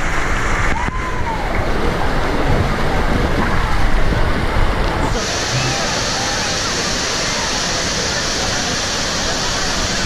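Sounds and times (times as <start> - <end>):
water rushing in slide tube: 0.0 - 10.0.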